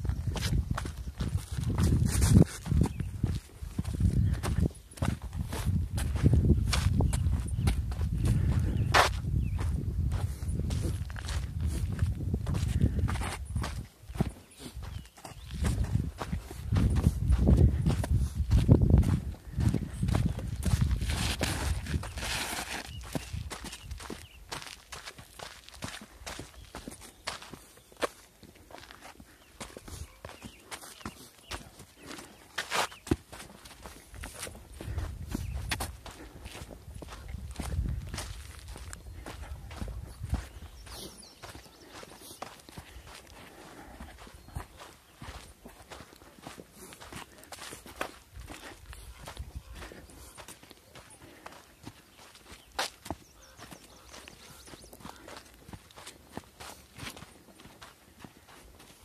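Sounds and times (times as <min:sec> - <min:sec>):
footsteps on sandy rocky trail: 0:00.0 - 0:59.0.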